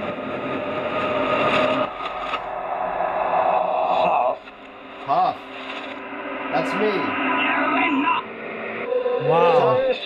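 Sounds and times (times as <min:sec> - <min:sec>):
garbled reversed radio audio: 0:01.6 - 0:10.0.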